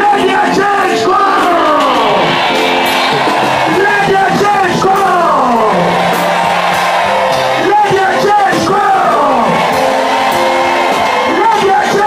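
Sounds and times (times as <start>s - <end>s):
crowd singing worship music: 0.0s - 12.0s.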